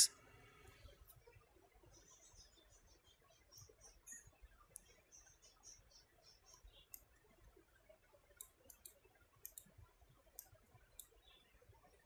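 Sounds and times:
mouse and keyboard clicks: 8.4s - 11.2s.

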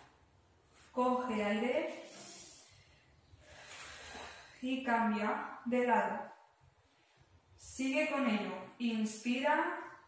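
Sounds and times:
woman breathing softly: 2.1s - 4.6s.

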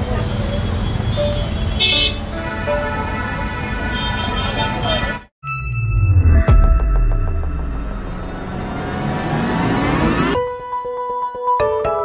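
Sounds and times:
traffic rumble: 0.0s - 5.3s
car horn toot: 0.9s - 5.3s.

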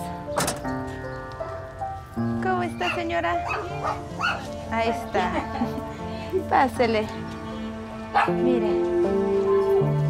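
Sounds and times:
music with long held notes: 0.0s - 10.0s
dog barking and yipping: 2.8s - 4.6s, 8.2s - 8.4s.

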